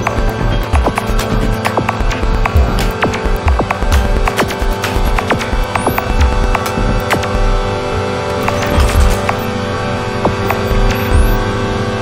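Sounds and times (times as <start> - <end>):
glitchy clicks and ticks: 0.0 - 7.6, 8.3 - 9.6, 10.2 - 11.4
electronic droning hum: 0.0 - 12.0
low throbbing bass pulses: 0.0 - 12.0.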